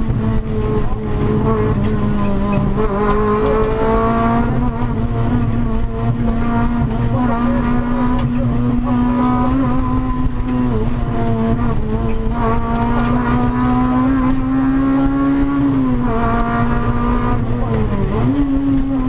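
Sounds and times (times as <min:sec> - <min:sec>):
car engine at high revs: 0:00.0 - 0:19.0.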